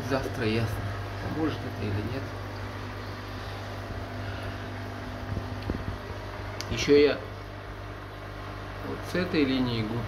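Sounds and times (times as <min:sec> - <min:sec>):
aquarium pumps humming: 0:00.0 - 0:10.0.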